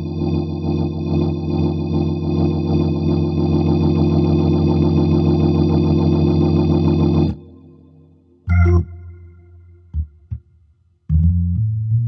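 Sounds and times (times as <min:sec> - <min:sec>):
organ chord with rotary warble: 0:00.0 - 0:09.9.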